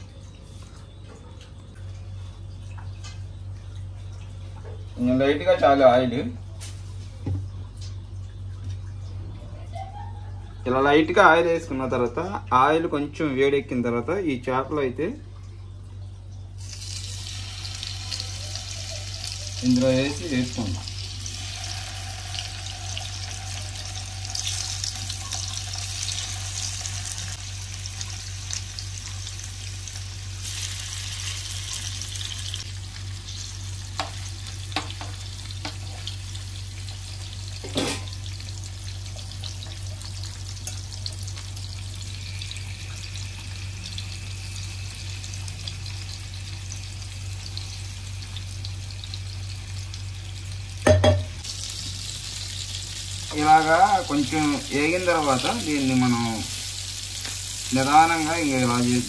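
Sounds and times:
fish sizzling in hot oil: 0:16.6 - 0:59.0
low hum: 0:20.2 - 0:34.6.

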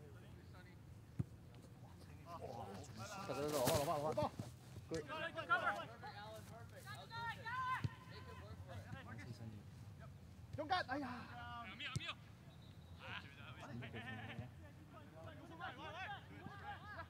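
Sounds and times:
players calling and shouting: 0:00.0 - 0:17.0.

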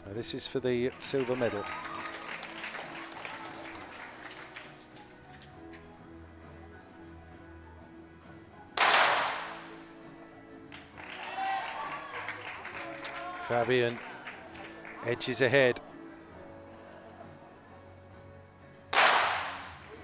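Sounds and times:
background music: 0:00.0 - 0:20.0
pistol shot: 0:08.8 - 0:09.6, 0:18.9 - 0:19.7.

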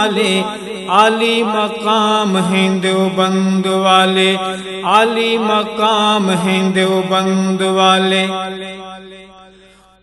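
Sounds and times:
man singing wordless melody: 0:00.0 - 0:09.3.

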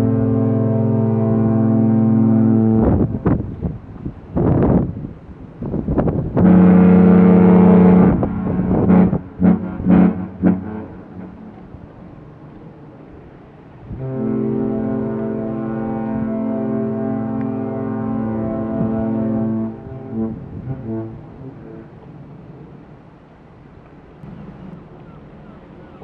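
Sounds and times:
lower-pitched ship horn blast: 0:00.0 - 0:04.9, 0:05.7 - 0:12.4, 0:13.8 - 0:22.2
ship horn blasts: 0:00.0 - 0:22.7.

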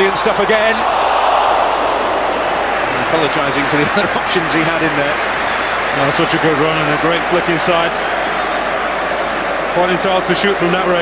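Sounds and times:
stadium crowd roaring: 0:00.0 - 0:11.0.

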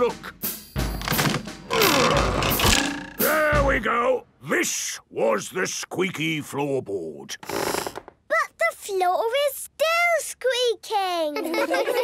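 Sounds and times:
background music: 0:00.0 - 0:05.1
wooden floorboard creaking: 0:01.0 - 0:03.1, 0:07.4 - 0:08.2.

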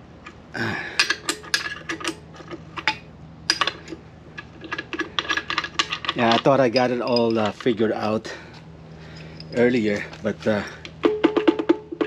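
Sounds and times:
metal tapping on metal: 0:11.0 - 0:12.0.

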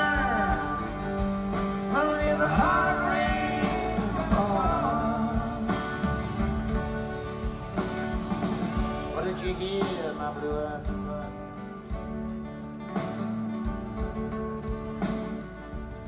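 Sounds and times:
live folk-rock band playing: 0:00.0 - 0:16.0.

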